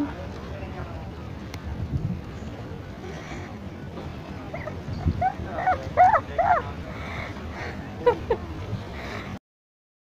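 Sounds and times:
low background noise: 0.0 - 9.4
high-pitched yelps: 4.6 - 6.6.

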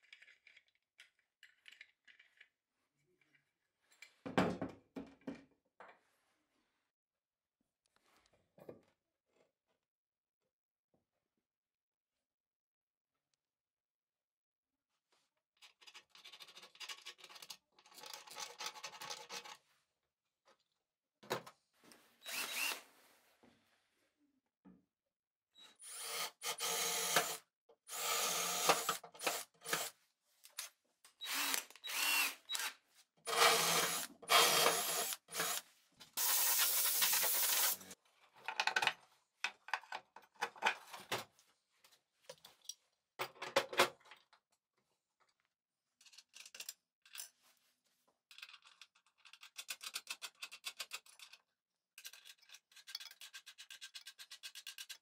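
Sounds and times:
power drill spinning: 22.2 - 22.9, 25.7 - 30.0, 31.2 - 35.6, 36.2 - 38.0.

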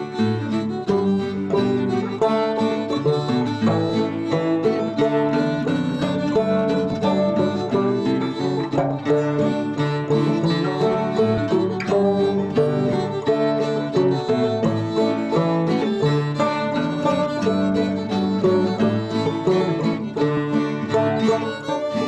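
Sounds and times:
banjo guitar and fiddle tune: 0.0 - 22.0.

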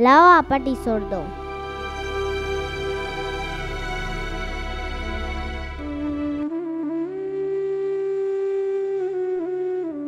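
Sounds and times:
flute-like wind instrument note: 0.0 - 10.0.

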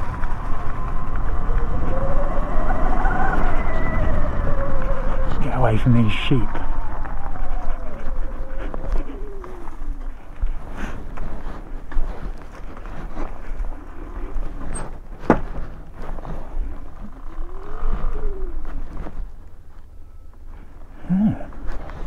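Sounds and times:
tyres rumbling on dirt: 0.0 - 22.0.

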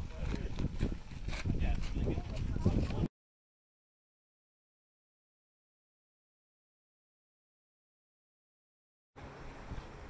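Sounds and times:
muffled voices talking: 1.5 - 3.1.

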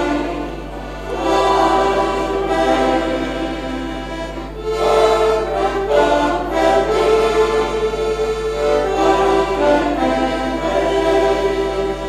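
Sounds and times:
accordion folk tune: 0.0 - 12.0.

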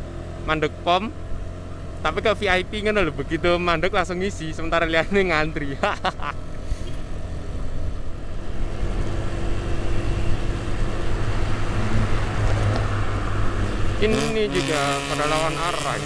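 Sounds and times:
road noise: 0.0 - 16.0
scooter engine hum: 0.0 - 16.0.

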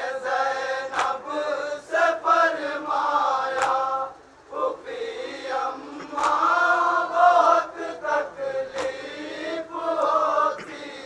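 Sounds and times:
men chanting a lament: 0.0 - 11.0
chest-beating slaps: 0.9 - 1.2, 3.5 - 3.8, 6.2 - 6.4.

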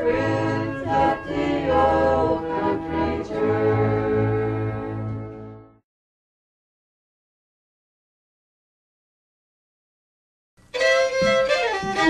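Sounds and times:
fiddle tune: 0.0 - 5.8, 10.7 - 12.0.

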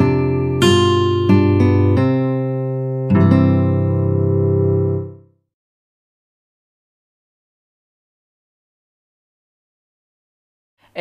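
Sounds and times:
plucked string chords: 0.0 - 5.4.

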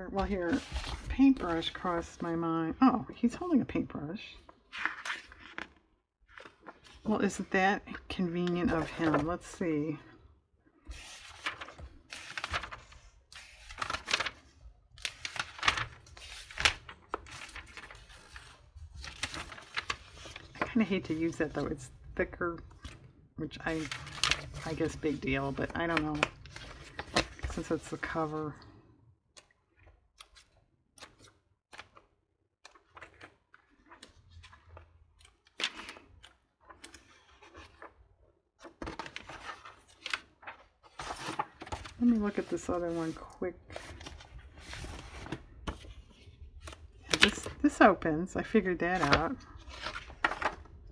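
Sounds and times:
magazine pages turning: 0.2 - 2.3, 4.4 - 9.9, 10.8 - 22.0, 22.7 - 47.8, 48.4 - 50.9.

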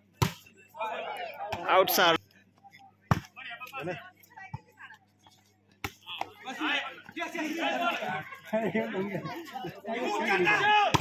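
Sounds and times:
players calling out: 6.0 - 11.0.

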